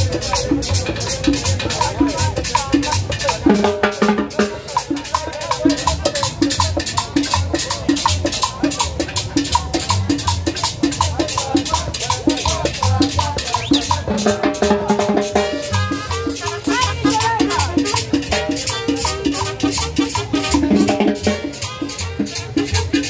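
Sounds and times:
timbales percussion rhythm: 0.0s - 23.0s
upright bass: 0.0s - 23.0s
trumpet: 15.2s - 23.0s
saxophone: 15.6s - 23.0s.

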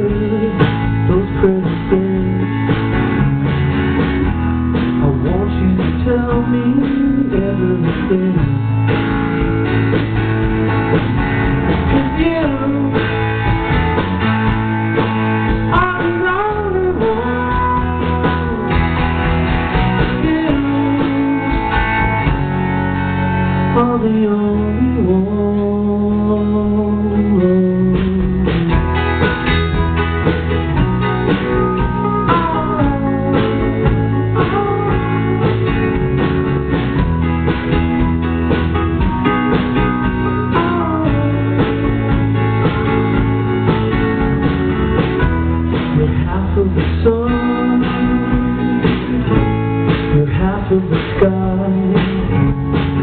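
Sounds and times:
bass guitar: 0.0s - 53.0s
electric guitar: 0.0s - 53.0s
keyboard: 0.0s - 53.0s.

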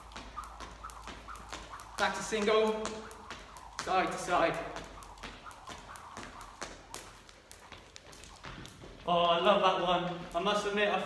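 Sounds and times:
skipping rope slapping floor: 0.0s - 11.0s.

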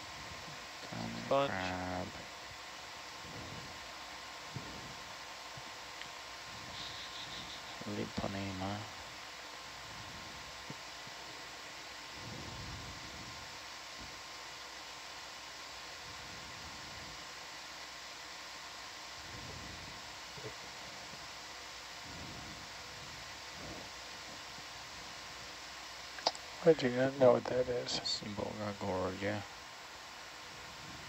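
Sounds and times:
background hiss: 0.0s - 31.0s
faint hum tones: 0.0s - 31.0s.

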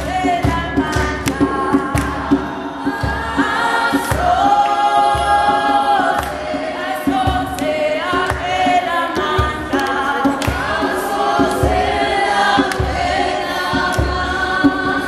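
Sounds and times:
group singing gospel: 0.0s - 15.0s.

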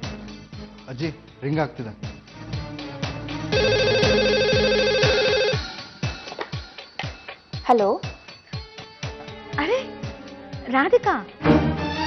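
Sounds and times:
background music: 0.0s - 12.0s
landline telephone ringing: 3.5s - 5.7s.

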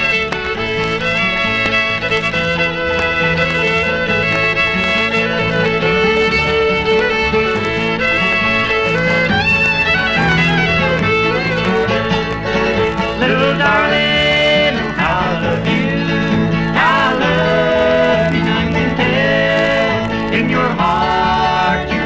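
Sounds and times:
fiddle melody: 0.0s - 22.0s
guitar backing: 0.0s - 22.0s.

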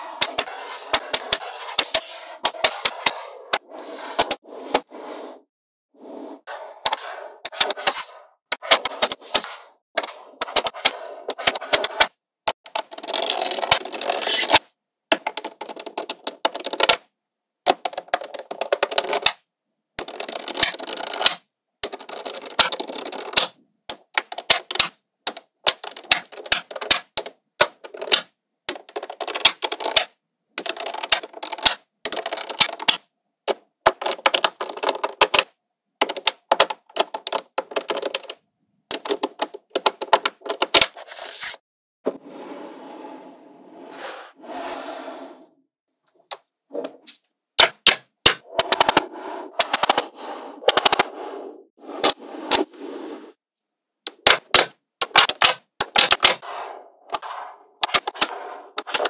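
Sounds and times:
magnetic balls clicking together: 10.0s - 17.0s, 20.0s - 40.9s, 47.6s - 49.0s, 49.6s - 50.1s, 50.7s - 51.1s, 54.1s - 56.4s, 57.8s - 59.0s.

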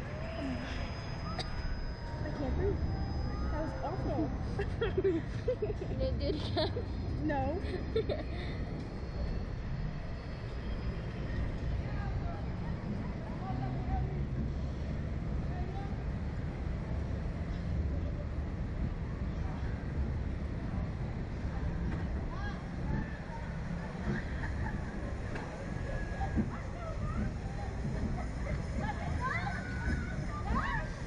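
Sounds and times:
faint voices murmuring: 0.0s - 31.0s.

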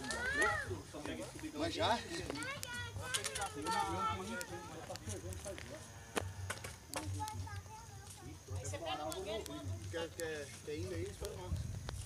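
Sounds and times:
indistinct voices talking: 0.0s - 11.8s
sharp clicks: 2.3s - 5.5s, 6.2s - 12.0s.

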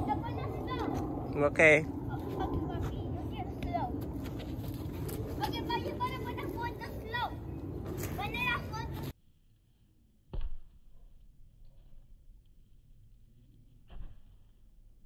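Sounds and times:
steady low rumble: 0.0s - 9.2s.

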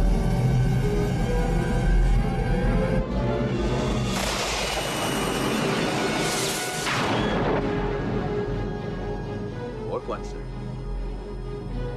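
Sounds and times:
dramatic music score: 0.0s - 11.9s.

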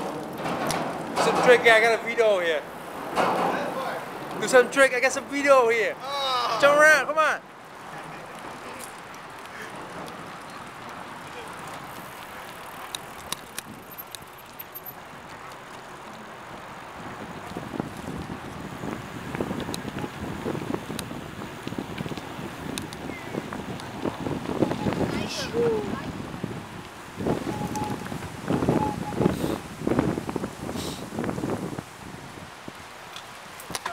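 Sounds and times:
sharp clicks and rattles: 0.0s - 2.4s, 11.6s - 16.2s
bicycle tyres rolling on pavement: 0.0s - 33.9s
wind on microphone: 16.9s - 33.9s.

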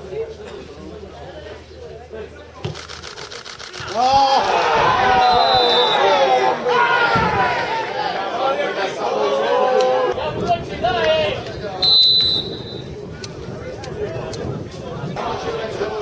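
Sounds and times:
people shouting and talking: 0.0s - 16.0s.

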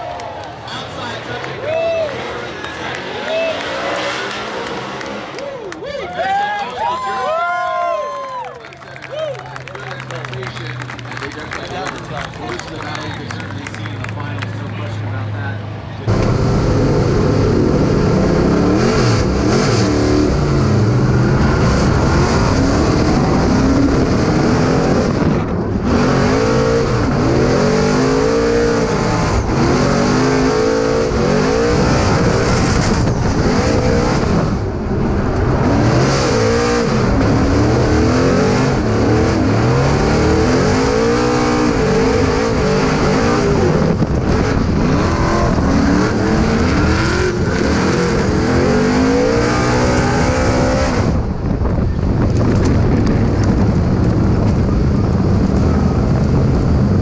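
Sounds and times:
engine revving up and down: 0.7s - 5.7s, 9.9s - 57.0s.

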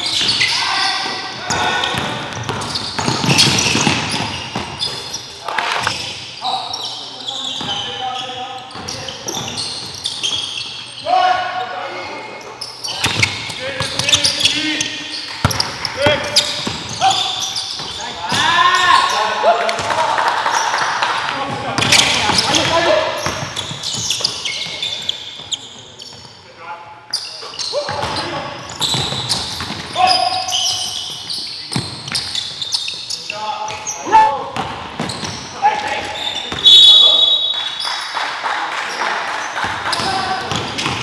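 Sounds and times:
players calling out: 0.0s - 26.1s, 27.1s - 38.2s.

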